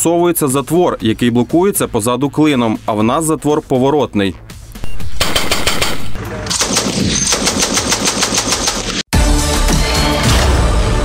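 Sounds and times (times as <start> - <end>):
heavy machine gun firing: 5.1 - 9.0.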